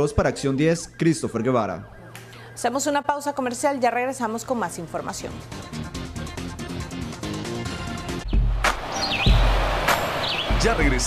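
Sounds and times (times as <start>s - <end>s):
swooping high-pitched tones: 0.2s - 3.8s
rushing whoosh: 8.4s - 10.8s.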